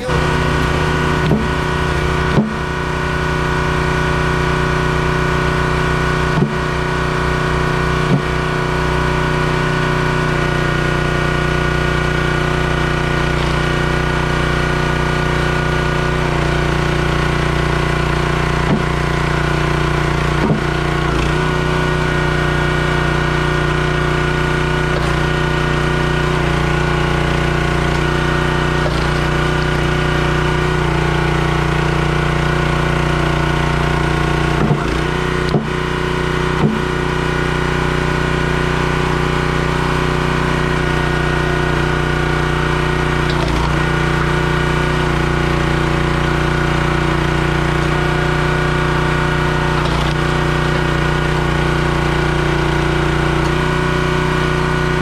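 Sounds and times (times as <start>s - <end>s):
log splitter engine running: 0.0s - 55.0s
wood splitting knocks: 0.5s - 2.8s, 6.3s - 6.7s, 18.6s - 19.1s, 20.3s - 20.8s, 27.7s - 30.0s, 34.5s - 35.8s, 36.6s - 37.0s.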